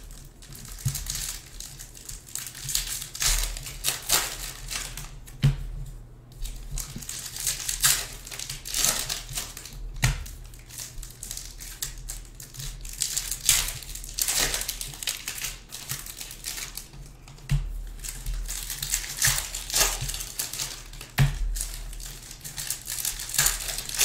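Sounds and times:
foil wrappers crinkling: 0.0 - 24.0.

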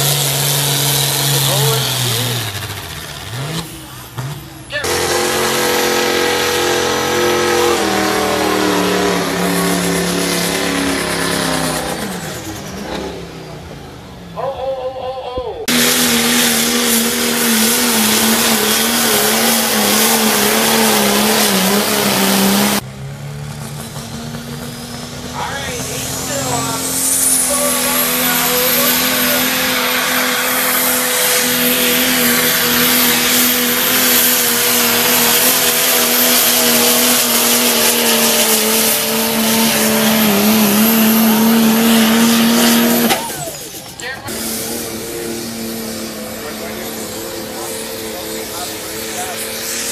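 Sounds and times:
engine at full throttle: 0.0 - 14.3, 15.6 - 49.9
rising whine: 4.8 - 14.2, 23.5 - 49.9.

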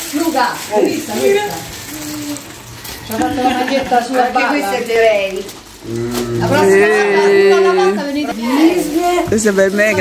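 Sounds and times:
voices talking: 0.2 - 10.0.

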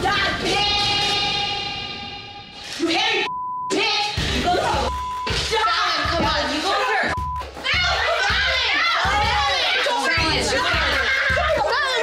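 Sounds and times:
background music: 0.0 - 12.0
censor bleep: 3.3 - 3.8, 4.8 - 5.3
women yelling and screaming: 5.5 - 12.0.

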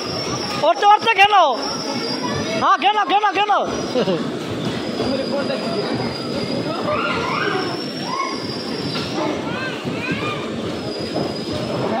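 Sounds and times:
bumper cars rumbling: 0.0 - 12.0.

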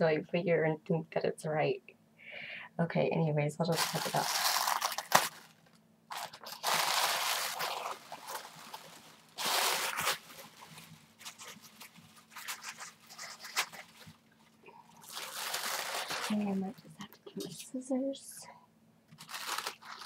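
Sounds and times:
tissue paper and tape crinkling: 3.7 - 17.6, 19.2 - 20.0.

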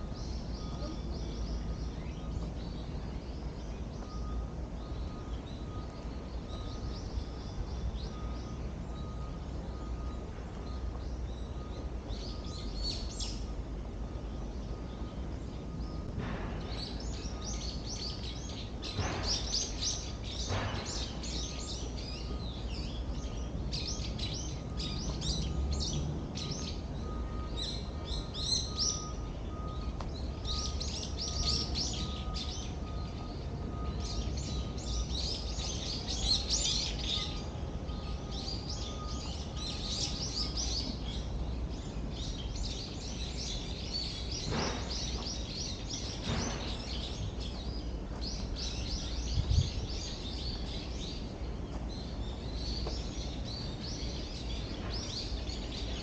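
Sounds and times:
songbirds chirping and twittering: 0.0 - 56.0.

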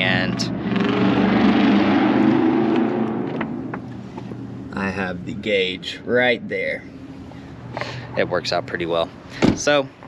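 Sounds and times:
car engine idling: 2.1 - 9.8.

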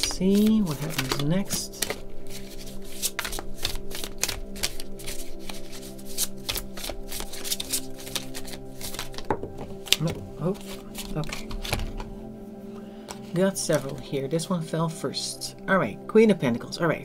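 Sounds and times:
cards being shuffled: 0.0 - 12.2, 13.0 - 14.1.

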